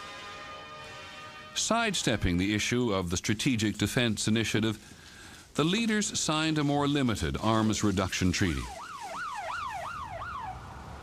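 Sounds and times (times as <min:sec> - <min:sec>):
police siren yelping: 0:08.6 - 0:11.0.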